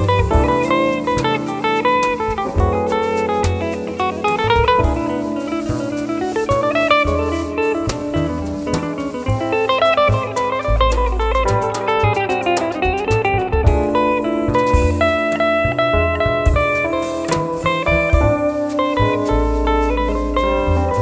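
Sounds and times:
drum kit: 0.0 - 21.0
jazz guitar single notes: 0.0 - 21.0
piano: 0.0 - 21.0
upright bass: 0.0 - 21.0.

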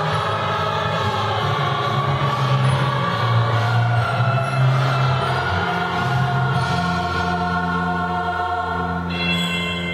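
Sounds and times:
children's choir singing chords: 0.0 - 9.9.

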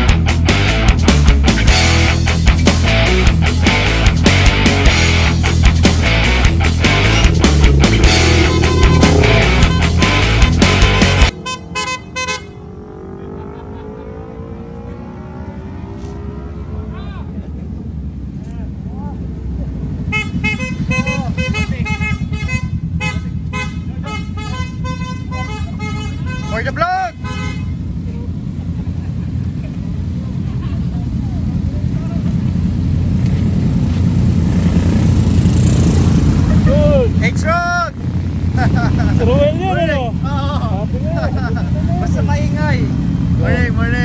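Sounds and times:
motorcycle engines rumbling: 0.0 - 44.0
horns tooting: 4.9 - 14.4, 20.0 - 28.1.

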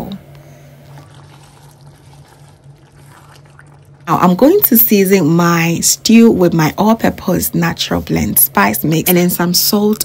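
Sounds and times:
stew bubbling in a pot: 0.0 - 5.8
constant low hum: 0.0 - 10.0.

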